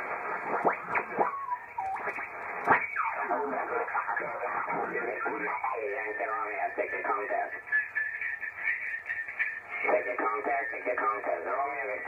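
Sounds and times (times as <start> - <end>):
garbled radio voices: 0.0 - 12.0
radio static: 0.0 - 12.0
single-sideband radio voice: 3.2 - 7.7, 9.7 - 12.0.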